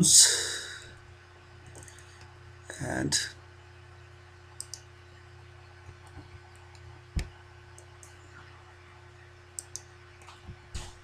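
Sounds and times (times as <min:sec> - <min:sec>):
low electrical hum: 0:00.0 - 0:11.0
computer mouse clicks: 0:01.6 - 0:02.3, 0:04.6 - 0:04.9, 0:05.8 - 0:08.2, 0:09.6 - 0:10.4.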